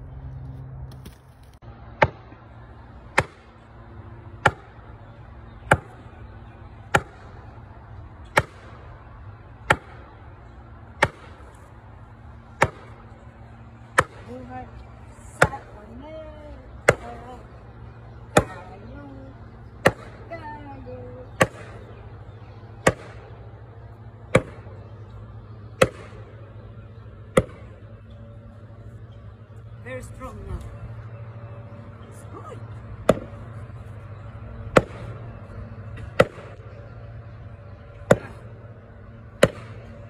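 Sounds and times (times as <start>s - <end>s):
hatchet chopping wood: 3.1s - 3.5s, 4.4s - 4.7s, 5.7s - 6.0s, 6.9s - 7.2s, 8.3s - 8.6s, 9.6s - 10.0s, 11.0s - 11.5s, 12.6s - 12.9s, 13.9s - 14.2s, 19.8s - 20.2s, 21.4s - 21.8s, 22.8s - 23.2s, 24.3s - 24.7s, 25.8s - 26.2s, 27.3s - 27.6s, 33.0s - 33.3s, 34.7s - 35.0s, 36.0s - 36.6s, 38.1s - 38.4s, 39.4s - 39.8s.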